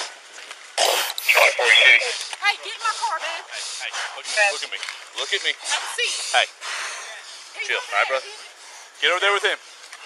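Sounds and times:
men's raised voices: 1.2s - 6.6s.

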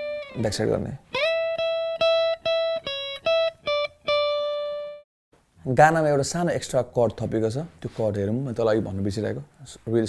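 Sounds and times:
electric guitar lead line: 0.0s - 5.0s.

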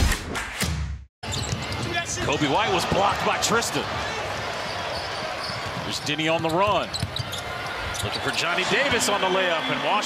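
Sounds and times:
basketball court sounds: 0.0s - 9.2s
arena crowd noise: 1.2s - 10.0s
basketball bouncing: 3.9s - 8.0s.

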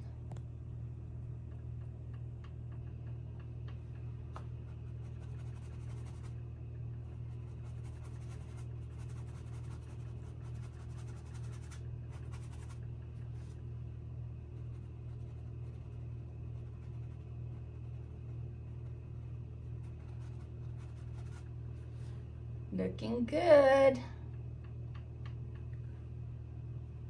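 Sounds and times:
steady low hum: 0.0s - 27.0s
paintbrush scratching on canvas: 4.7s - 6.4s, 7.3s - 13.6s, 18.8s - 21.6s.

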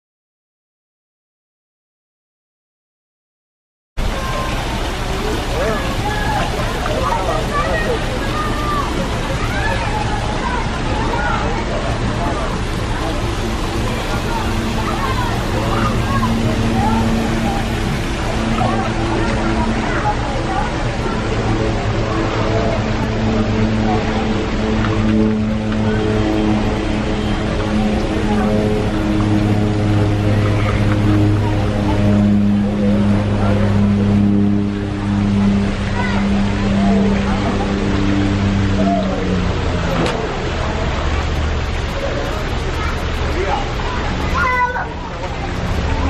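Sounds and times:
low mechanical hum: 4.0s - 46.0s
noisy water wash: 4.0s - 46.0s
people and children chattering: 4.0s - 46.0s
people talking: 4.0s - 46.0s.

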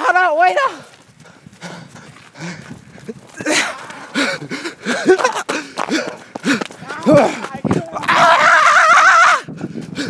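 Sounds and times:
footsteps running on snow: 0.0s - 8.8s, 9.4s - 10.0s.

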